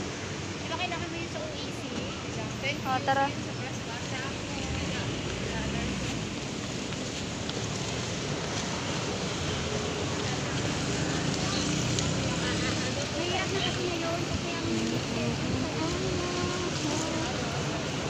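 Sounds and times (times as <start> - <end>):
city street traffic: 0.0 - 18.0
faint voices of passers-by: 0.0 - 18.0
cars passing close by: 2.2 - 18.0.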